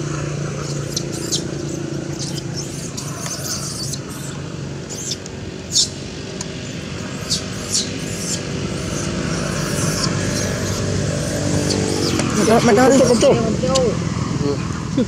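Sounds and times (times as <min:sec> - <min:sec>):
motor engine running: 0:00.0 - 0:15.0.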